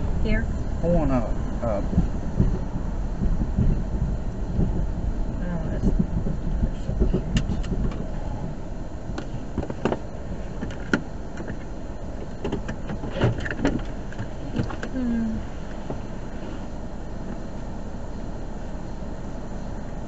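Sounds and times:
car engine idling: 0.0s - 20.0s
clicks and knocks in cabin: 5.9s - 8.2s, 9.1s - 15.0s.

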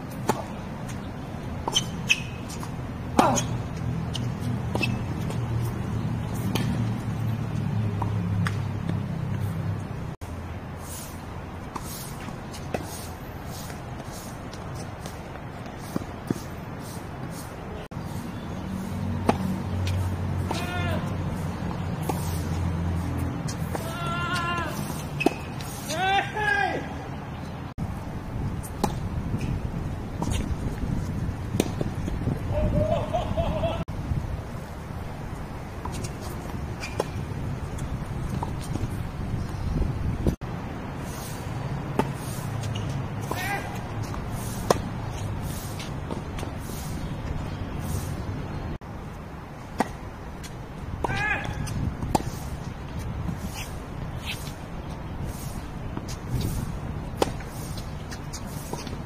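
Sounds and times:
tennis ball struck by racket: 0.1s - 5.5s, 6.4s - 7.0s, 7.8s - 9.5s, 18.8s - 21.1s, 21.7s - 26.0s, 31.5s - 32.1s, 41.9s - 47.0s, 49.7s - 52.5s, 55.3s - 59.0s
ball bouncing on hard court: 6.4s - 9.4s, 19.2s - 22.3s.

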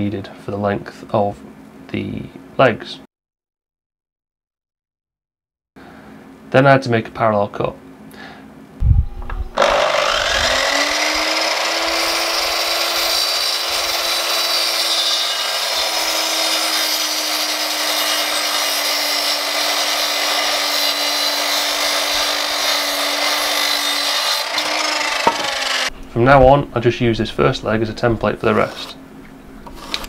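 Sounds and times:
mitre saw cutting wood: 9.6s - 25.9s, 28.5s - 29.0s.

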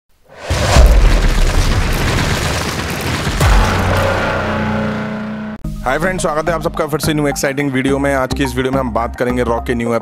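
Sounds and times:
crumbling debris: 0.4s - 5.0s
wall smashing boom: 0.4s - 5.6s.

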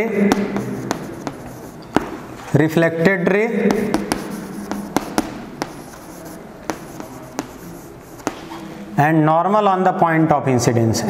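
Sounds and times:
chalk scratching on chalkboard: 0.0s - 2.5s, 3.6s - 8.8s
chalk tapping on board: 0.0s - 2.5s, 3.5s - 8.8s.

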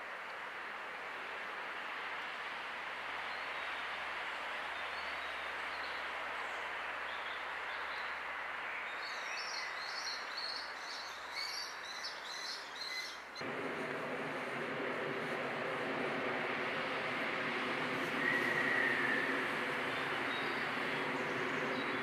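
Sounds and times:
rushing outdoor background noise: 13.2s - 22.0s.

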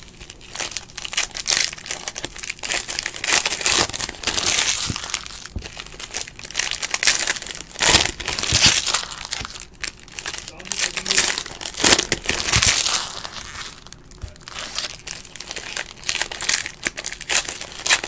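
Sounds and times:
foil wrapper crinkling: 0.0s - 18.0s.

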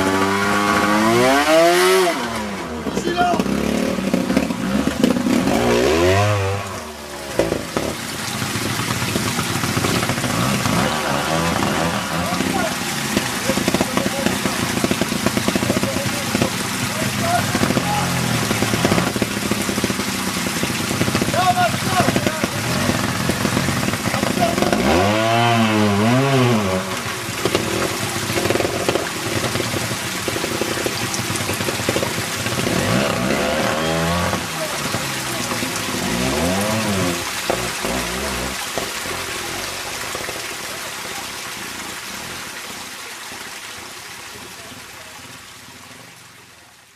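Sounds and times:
motorcycle engine revving: 0.0s - 40.4s.

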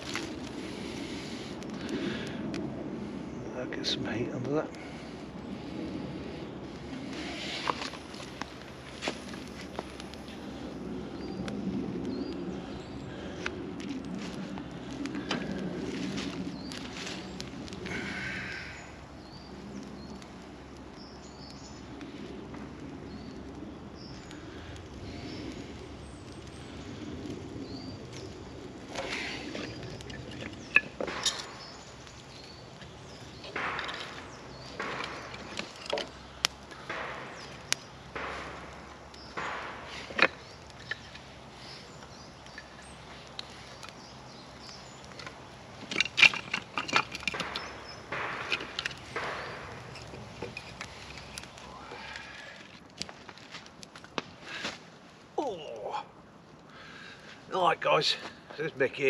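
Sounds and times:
fire crackling and popping: 0.0s - 59.0s
sticks clacking and knocking: 33.4s - 38.7s, 39.4s - 41.3s, 45.1s - 51.6s.

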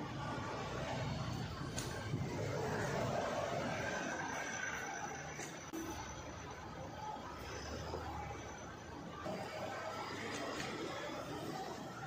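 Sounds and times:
outdoor street ambience: 0.0s - 12.0s.

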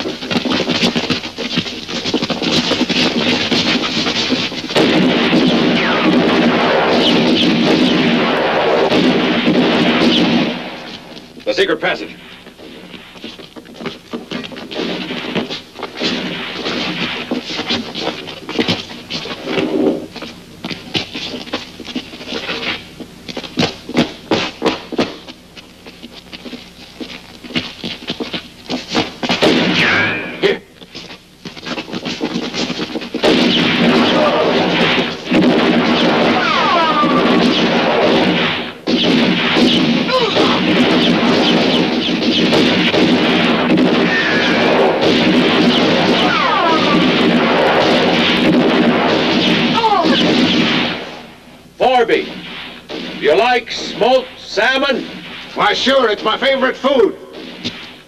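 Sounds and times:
gunshots cracking: 2.5s - 13.2s, 14.0s - 18.7s, 29.0s - 30.6s, 32.4s - 58.0s
bullet ricochets whining: 4.8s - 11.2s, 29.4s - 30.6s, 33.2s - 51.4s.

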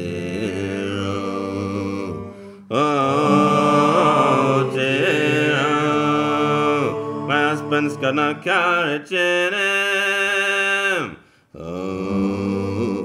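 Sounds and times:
folk group singing in harmony: 0.0s - 10.7s, 11.6s - 13.0s.

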